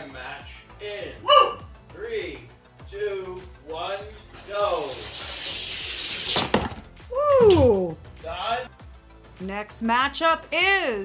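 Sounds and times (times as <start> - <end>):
toy cars rolling on plastic track: 4.6 - 6.6
toy cars clacking: 4.9 - 6.8.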